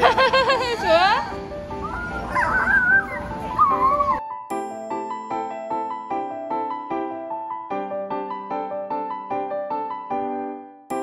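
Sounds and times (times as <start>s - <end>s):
background music with held notes: 0.0s - 11.0s
high whining cry: 0.6s - 4.2s.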